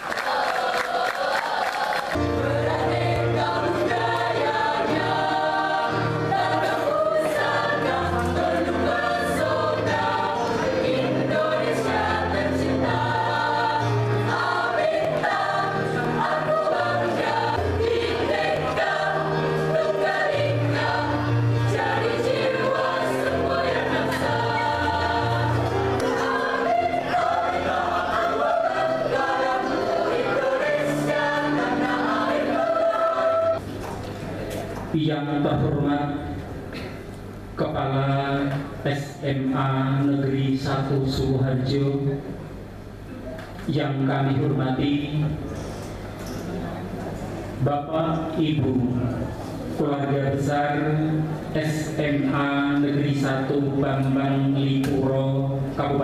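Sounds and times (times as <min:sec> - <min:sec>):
young voices singing in unison: 0:00.0 - 0:33.6.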